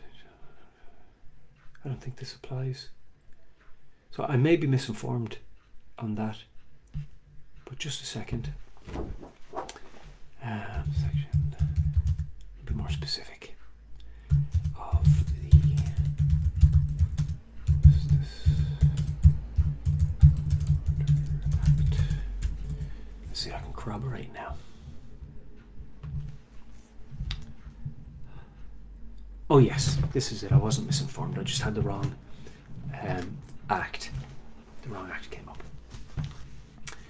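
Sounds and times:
typing on computer keyboard: 0:10.8 - 0:12.3, 0:14.3 - 0:22.9.

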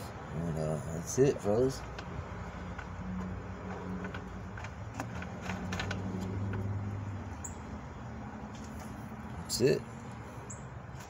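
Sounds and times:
oil filler cap clicking and scraping: 0:01.8 - 0:06.8.

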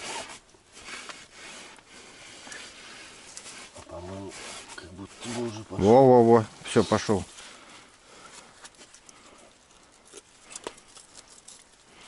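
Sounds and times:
faint clicks and rustles: 0:00.0 - 0:12.0.

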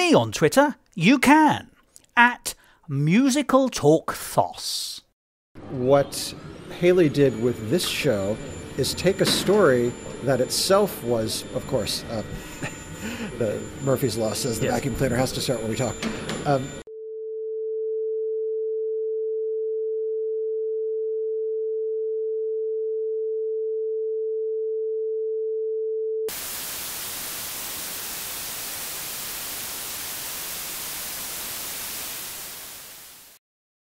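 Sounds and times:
electronic sine tone: 0:05.9 - 0:33.0
white noise hiss: 0:26.3 - 0:33.4.

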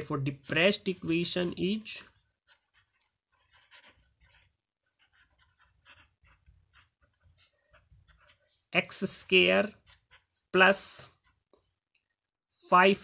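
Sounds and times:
marker pen scratching on paper: 0:00.0 - 0:13.0.

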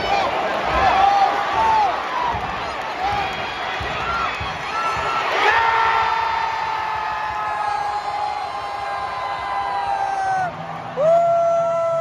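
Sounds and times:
fans holding long shouts: 0:00.0 - 0:12.0
stadium crowd cheering: 0:00.0 - 0:12.0.

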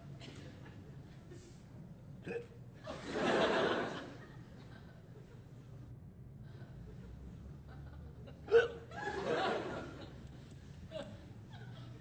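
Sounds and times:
audience laughter: 0:02.9 - 0:05.4, 0:07.8 - 0:10.3.

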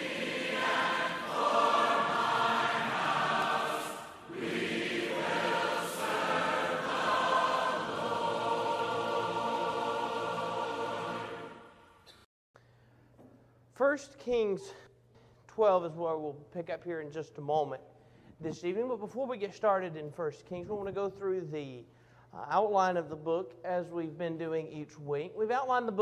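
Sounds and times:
choir singing: 0:00.0 - 0:12.2.

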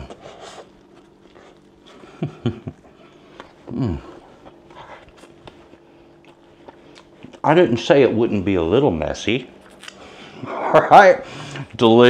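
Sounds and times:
person chewing: 0:00.0 - 0:07.4, 0:09.6 - 0:10.6
faint steady hum: 0:00.0 - 0:12.0.

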